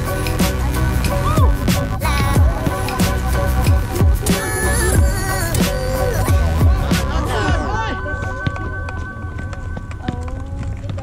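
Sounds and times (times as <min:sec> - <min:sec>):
footsteps of players running: 0:07.9 - 0:11.0
basketball bouncing on asphalt: 0:08.2 - 0:11.0.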